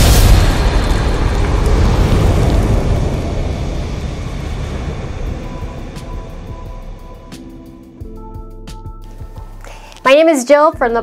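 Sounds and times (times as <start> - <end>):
low rumbling boom: 0.0 - 9.3.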